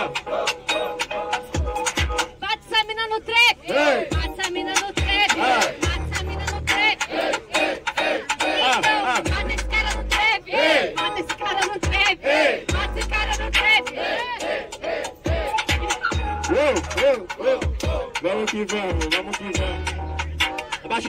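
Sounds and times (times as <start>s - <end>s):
hip-hop beat over loudspeakers: 0.0s - 2.6s, 3.9s - 21.0s
crowd shouting along: 3.5s - 4.3s, 5.1s - 9.4s, 10.2s - 11.1s, 11.9s - 18.2s.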